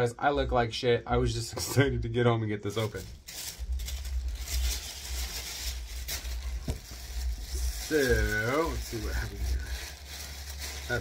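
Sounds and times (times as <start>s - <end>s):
cardboard and paper rustling: 2.8s - 11.0s
steady low rumble: 2.8s - 11.0s.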